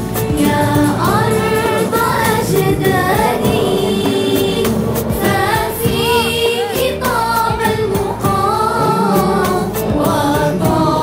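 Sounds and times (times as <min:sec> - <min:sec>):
children's choir singing: 0:00.0 - 0:11.0
instrumental accompaniment with beat: 0:00.0 - 0:11.0.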